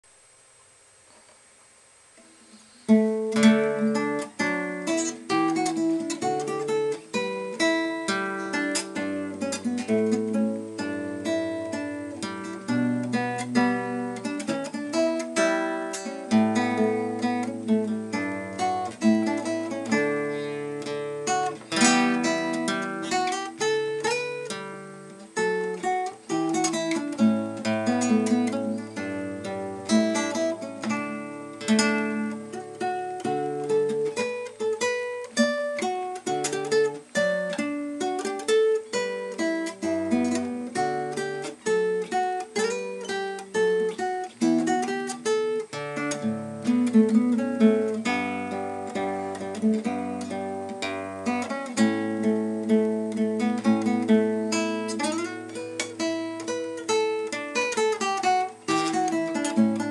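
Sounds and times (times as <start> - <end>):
fingerpicked classical guitar: 1.1 - 59.9.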